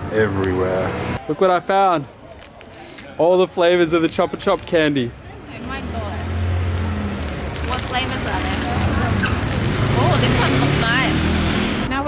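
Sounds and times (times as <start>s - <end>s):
vehicle engine humming: 5.0s - 12.0s.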